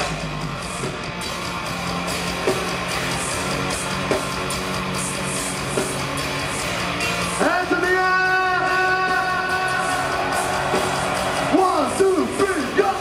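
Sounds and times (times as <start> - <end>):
drums: 0.0 - 13.0
heavily distorted guitars: 0.0 - 13.0.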